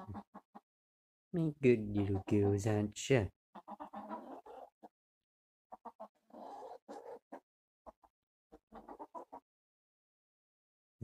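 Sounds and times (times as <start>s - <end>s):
hens clucking: 0.0s - 0.7s, 1.7s - 2.9s, 3.5s - 5.0s, 5.7s - 9.5s.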